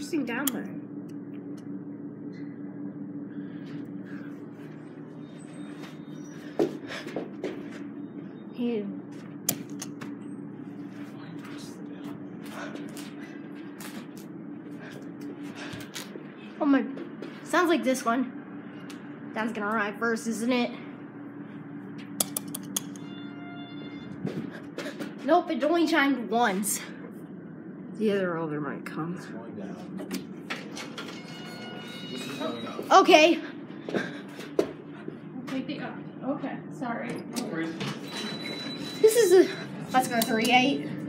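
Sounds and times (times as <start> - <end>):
elevator hum: 0.0 - 41.0
elevator hall chime: 23.0 - 24.2, 31.0 - 33.0, 38.0 - 40.8
elevator lobby background noise: 29.7 - 41.0.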